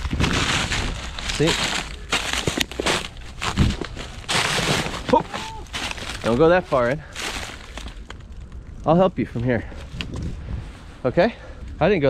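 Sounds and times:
footsteps crunching through dry leaves: 0.0s - 8.3s.

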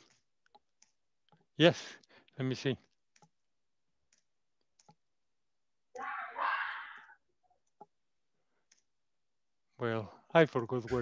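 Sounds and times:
computer clicks: 3.1s - 3.4s, 4.1s - 5.0s.

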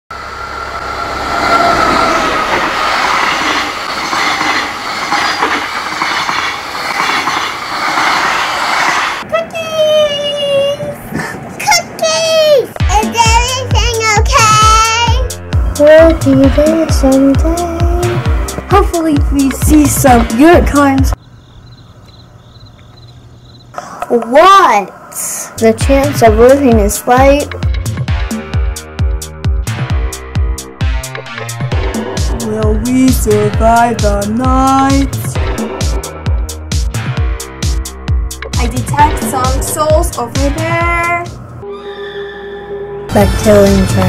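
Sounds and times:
high whine: 0.1s - 9.2s
train wheels rumbling and clattering: 0.1s - 21.2s
high rapidly pulsing chirp: 21.1s - 23.7s.

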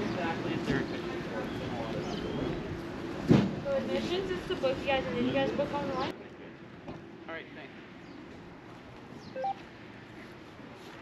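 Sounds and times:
two-note electronic beep: 9.4s - 9.6s.

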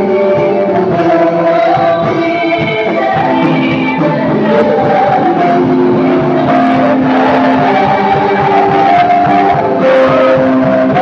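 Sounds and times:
choir singing gospel song: 0.0s - 11.0s.

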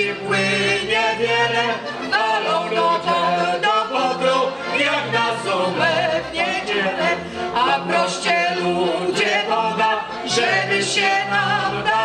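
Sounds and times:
double bass line: 0.0s - 12.0s
fiddle: 0.0s - 12.0s.

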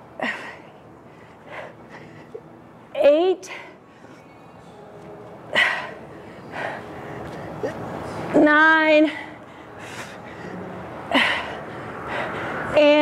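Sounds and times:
woman breathing hard: 0.2s - 2.5s, 5.5s - 8.2s, 9.1s - 12.8s.

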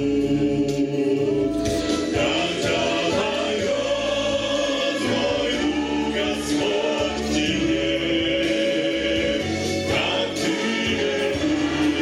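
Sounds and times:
male vocal group singing in harmony: 0.0s - 12.0s.

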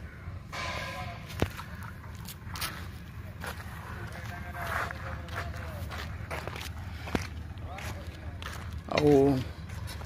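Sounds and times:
steady low rumble: 0.0s - 10.0s
footsteps walking: 1.3s - 10.0s.

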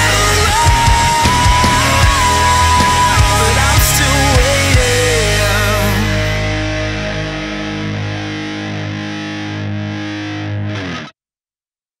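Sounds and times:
distorted electric guitar chord: 0.0s - 11.1s
rock music: 0.0s - 11.1s.

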